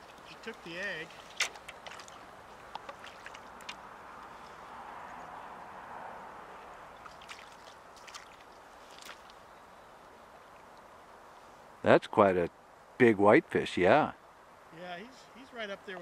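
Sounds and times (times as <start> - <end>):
shallow river water splashing: 0.0 - 11.5.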